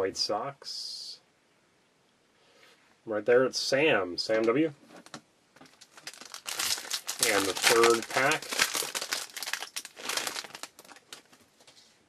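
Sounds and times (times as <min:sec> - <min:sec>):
wrapper crinkling: 0:05.0 - 0:11.7
cards rustling: 0:05.0 - 0:11.8.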